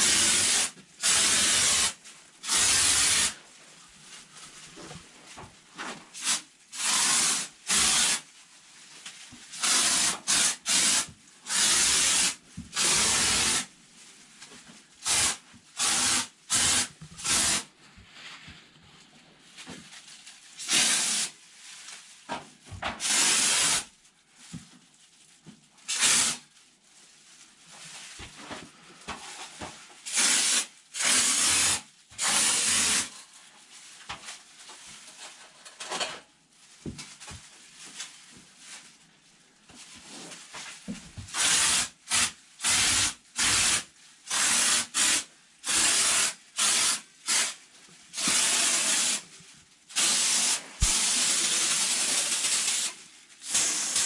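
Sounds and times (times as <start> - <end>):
spray foam hissing bursts: 0.0 - 3.4, 6.2 - 8.2, 9.6 - 13.7, 15.0 - 17.6, 20.6 - 21.3, 23.0 - 23.9, 25.9 - 26.4, 30.1 - 33.1, 41.4 - 47.6, 48.2 - 49.2, 50.0 - 52.9.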